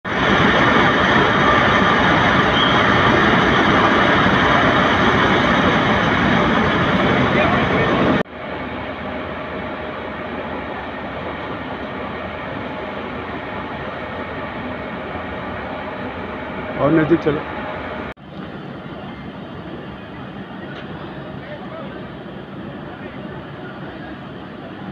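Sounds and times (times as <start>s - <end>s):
loud steady rushing noise: 0.0s - 24.9s.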